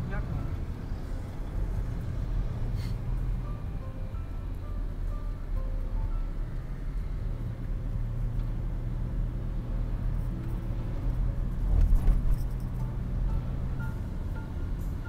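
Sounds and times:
faint background music: 0:00.0 - 0:15.0
vehicle road rumble: 0:00.0 - 0:15.0.

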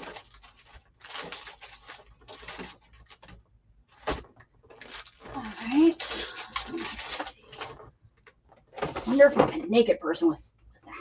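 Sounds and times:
paper rustling and shuffling: 0:00.0 - 0:07.9, 0:08.5 - 0:09.5.

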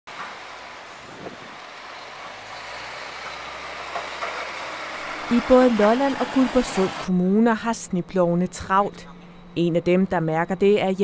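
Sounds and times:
snowplow truck rushing noise: 0:00.1 - 0:07.1.

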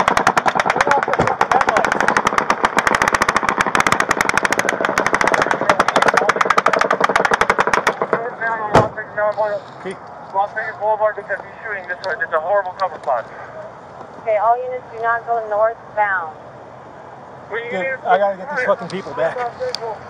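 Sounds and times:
automatic gunfire: 0:00.0 - 0:08.2
loud sharp bang: 0:00.0 - 0:09.0.

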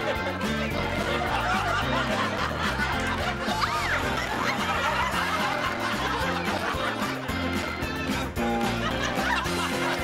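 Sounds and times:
bouncy comedy music: 0:00.0 - 0:10.0
canned laugh track: 0:00.0 - 0:10.0.

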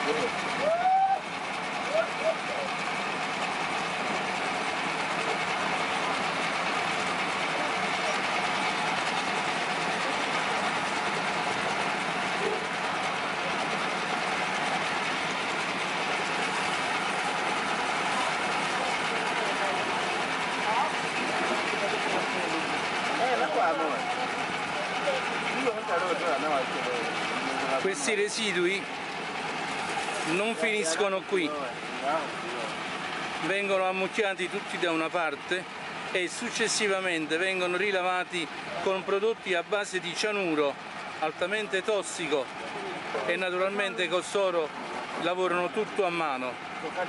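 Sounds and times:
loud mechanical din: 0:01.3 - 0:39.4.

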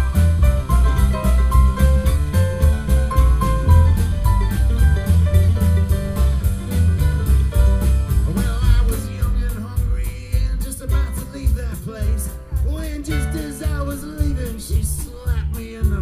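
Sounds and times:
mandolin: 0:00.0 - 0:09.0
strummed acoustic guitar: 0:00.0 - 0:16.0
upright bass: 0:00.0 - 0:16.0
man singing: 0:08.2 - 0:16.0.

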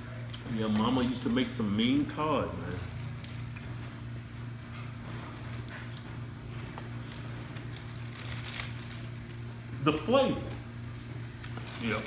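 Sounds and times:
low room hum: 0:00.0 - 0:12.0
paper wrappers rustling: 0:01.0 - 0:03.9, 0:04.8 - 0:06.1, 0:07.0 - 0:09.5, 0:11.4 - 0:12.0.

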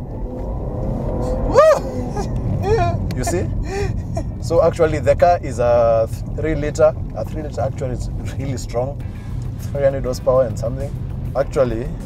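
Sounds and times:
car engine accelerating: 0:00.0 - 0:12.0
faint whine: 0:00.0 - 0:12.0.

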